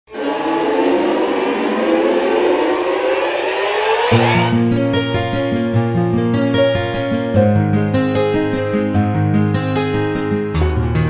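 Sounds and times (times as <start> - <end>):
noisy synth swell rising: 0.1 - 5.3.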